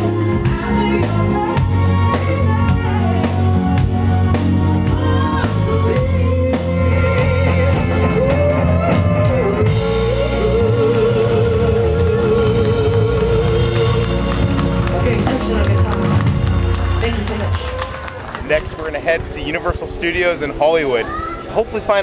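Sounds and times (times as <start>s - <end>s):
guitar: 0.0s - 19.8s
drums: 0.0s - 21.9s
bass: 0.0s - 22.0s.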